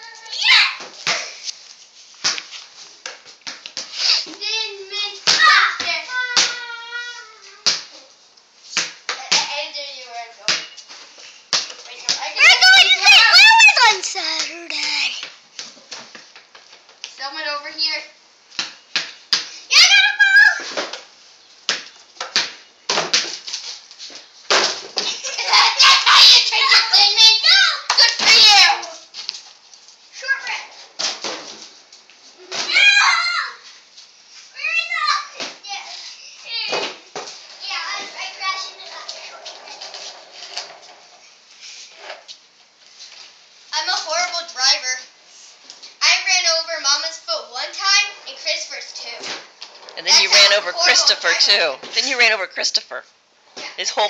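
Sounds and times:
children calling: 0:12.2 - 0:15.2, 0:25.3 - 0:29.1, 0:47.9 - 0:52.6.

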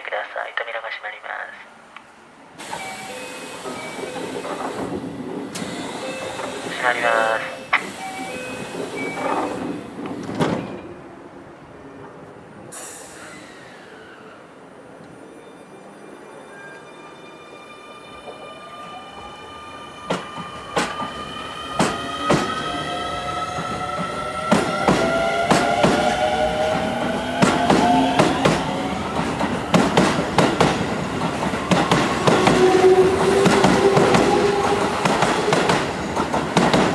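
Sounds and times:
train knock: 0:21.8 - 0:22.6, 0:26.8 - 0:36.9.

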